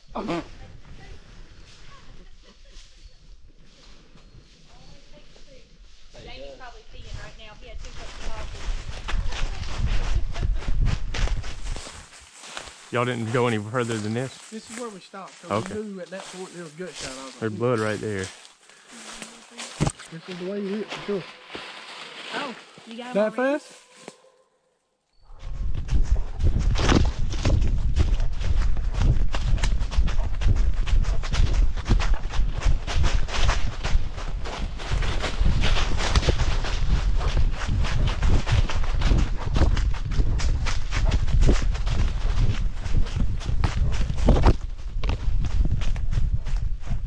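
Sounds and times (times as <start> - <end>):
rustling in dry leaves: 0.7 - 24.4, 28.1 - 45.2.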